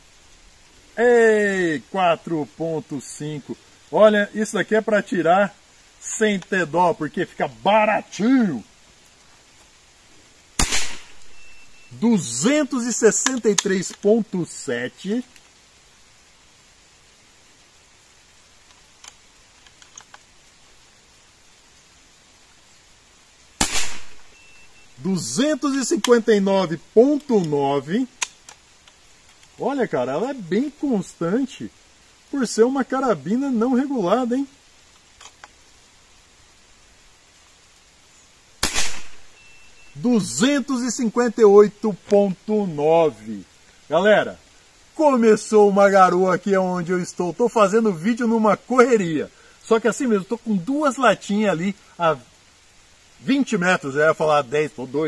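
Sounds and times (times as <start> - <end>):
air rifle shot: 10.6 - 11.2, 23.6 - 24.3, 38.6 - 39.3
faint high beep: 11.2 - 12.0, 24.3 - 25.0, 39.3 - 40.1.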